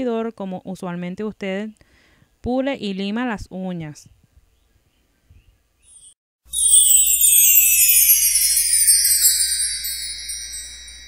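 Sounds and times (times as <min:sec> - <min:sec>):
shimmering sparkle chimes: 0:06.5 - 0:11.0.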